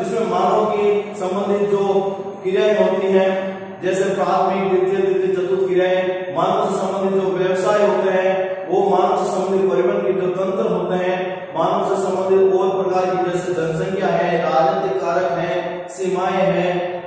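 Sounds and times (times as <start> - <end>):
man chanting: 0.0 - 17.0.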